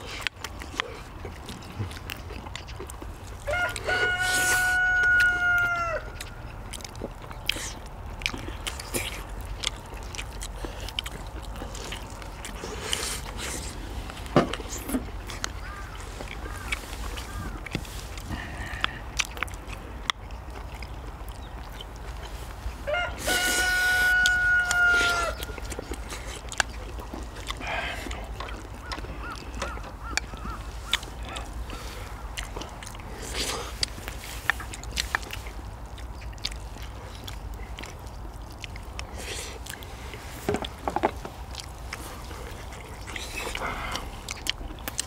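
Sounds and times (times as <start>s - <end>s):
people eating: 0.0s - 45.0s
rooster crowing: 3.4s - 6.2s, 22.8s - 25.5s.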